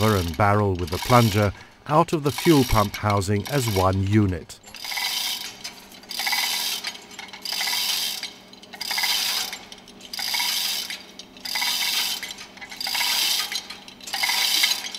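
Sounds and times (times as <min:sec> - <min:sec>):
chain hoist links rattling: 0:00.0 - 0:14.9.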